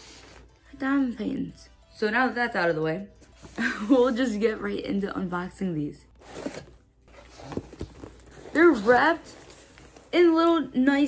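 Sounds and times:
cardboard flaps rustling: 6.2 - 10.1.

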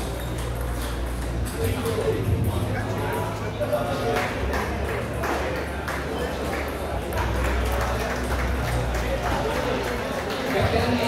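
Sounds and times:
chatter of people: 0.0 - 11.0.

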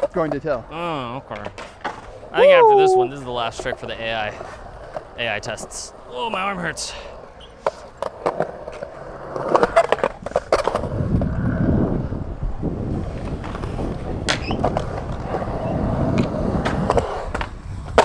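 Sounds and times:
skateboard clacks: 0.0 - 2.4, 7.1 - 11.5, 12.9 - 18.0
skateboard wheels rolling on concrete: 0.0 - 18.0.

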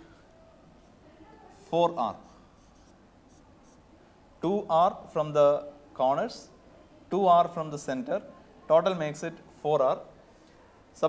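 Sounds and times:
person speaking: 0.8 - 6.5
marker pen scratching: 1.9 - 3.8.

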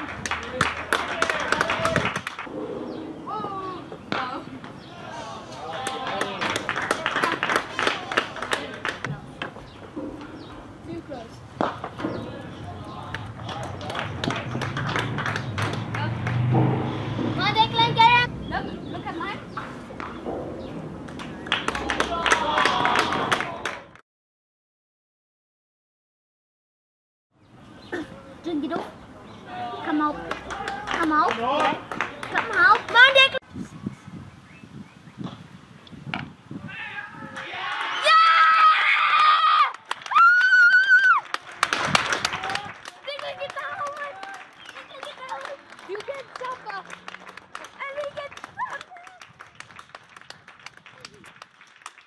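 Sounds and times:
low rumble on microphone: 2.4 - 4.6
distant high-pitched shouts: 36.7 - 39.7.

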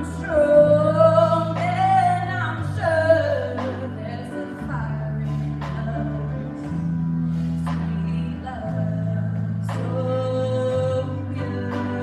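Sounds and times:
live band accompaniment: 0.0 - 12.0
woman singing: 0.0 - 12.0.

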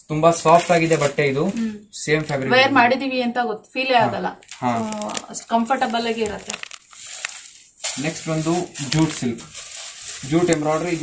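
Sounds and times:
person speaking: 0.3 - 3.0, 3.9 - 6.8, 8.0 - 11.0
fabric rustling and crinkling: 0.4 - 1.6, 4.4 - 11.0.

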